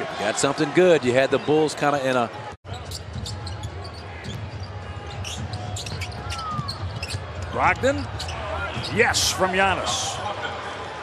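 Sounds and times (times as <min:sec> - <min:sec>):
sneaker squeak: 0:02.7 - 0:09.1
arena crowd murmur: 0:03.4 - 0:11.0.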